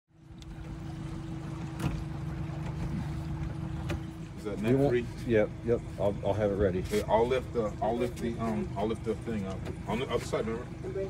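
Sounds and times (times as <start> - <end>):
boat motor running: 0.1 - 11.0.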